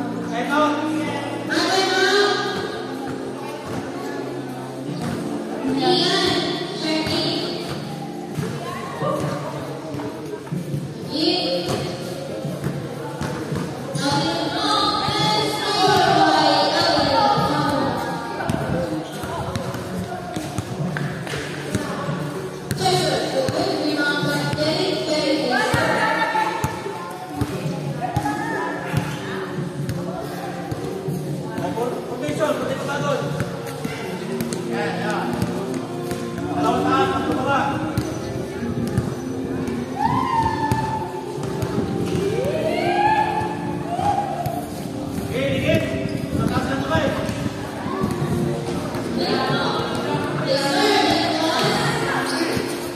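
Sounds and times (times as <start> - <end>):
background music: 0.0 - 52.9
basketballs bouncing on court: 6.2 - 10.1, 15.1 - 22.0, 22.7 - 24.7, 26.6 - 29.2, 33.3 - 36.6, 37.2 - 39.8, 44.0 - 49.2
children's voices: 47.6 - 52.9.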